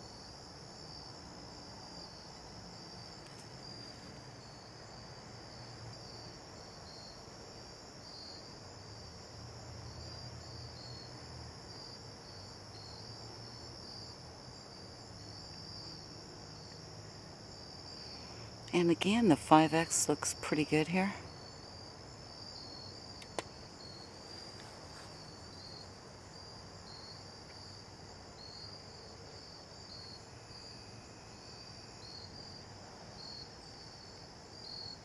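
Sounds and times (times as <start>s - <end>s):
crickets trilling: 0.0s - 35.0s.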